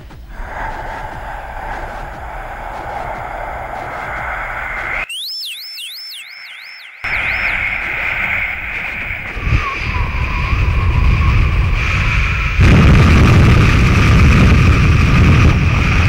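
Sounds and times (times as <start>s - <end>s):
electronic noise hiss and rumble: 0.0s - 16.0s
high electronic tone sweeping: 0.4s - 11.6s.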